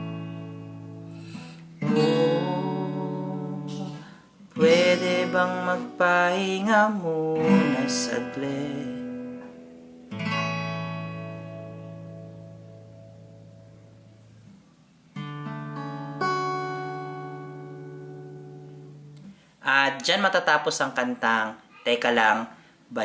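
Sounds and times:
acoustic guitar chords ringing: 0.0s - 19.5s
person singing: 1.2s - 9.4s.

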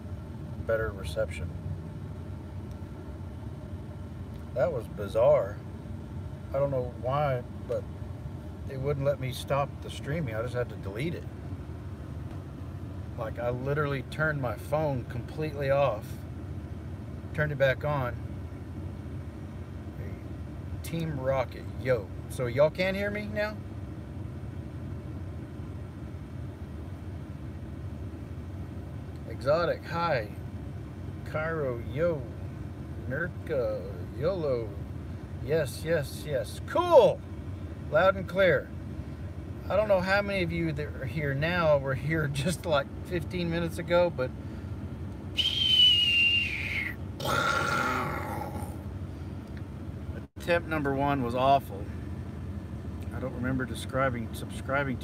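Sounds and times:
truck cab low rumble: 0.0s - 55.0s
man whistling: 45.3s - 47.0s
man humming closed-mouth: 45.4s - 48.8s.

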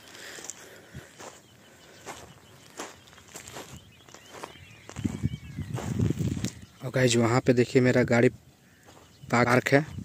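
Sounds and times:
footsteps on grassy sandy ground: 0.0s - 10.0s.

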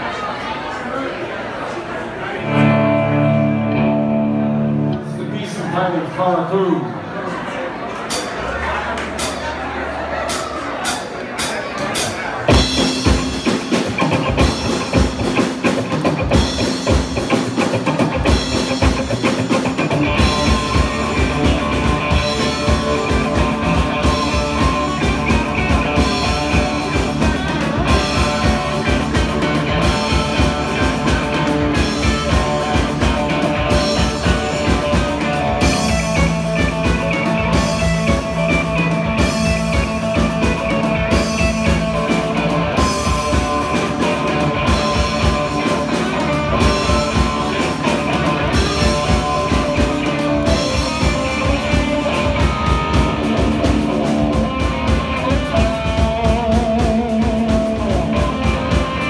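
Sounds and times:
electric guitar: 2.4s - 5.8s, 11.9s - 59.0s
drum kit: 8.1s - 59.0s.

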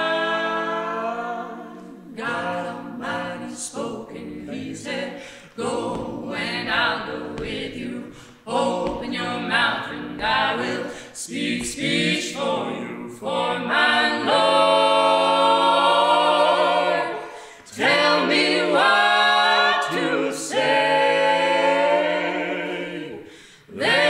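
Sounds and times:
a cappella group singing in harmony: 0.0s - 24.0s.

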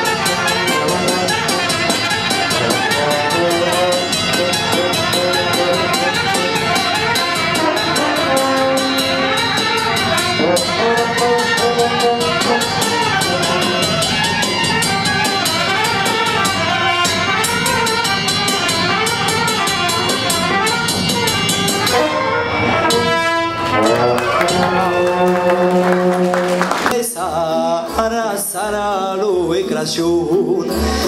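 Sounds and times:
brass band playing folk tune: 0.0s - 27.4s, 30.3s - 31.0s
steady drumbeat: 0.0s - 31.0s.

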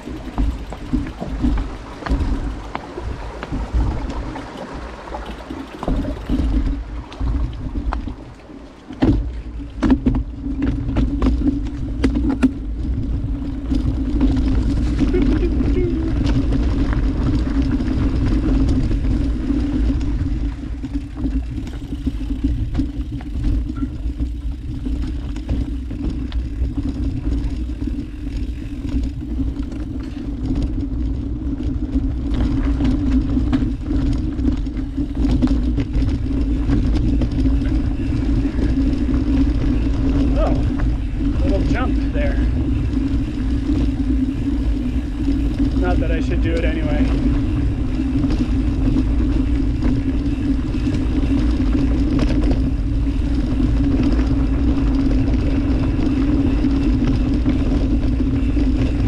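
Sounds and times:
bike rattling and knocking: 0.0s - 59.0s
constant buzzing hum: 0.0s - 59.0s
wind and tyres rumbling on trail: 0.0s - 59.0s.

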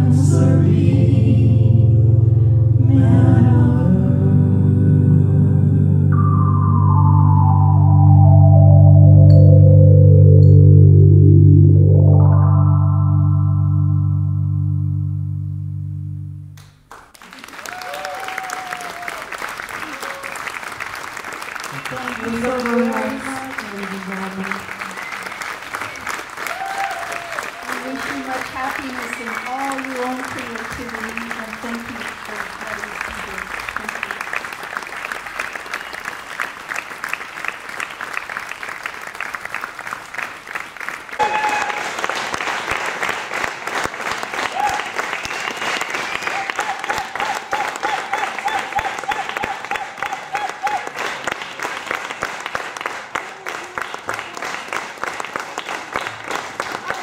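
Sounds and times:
audience applauding: 16.9s - 57.0s
crowd cheering: 17.1s - 57.0s
long wavering cheer: 17.4s - 20.6s, 24.7s - 28.3s, 41.2s - 42.0s, 44.4s - 45.1s, 46.1s - 51.0s.

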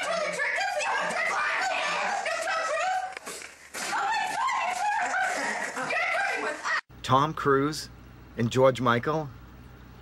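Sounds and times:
teenagers laughing: 0.0s - 3.2s, 3.8s - 6.9s.

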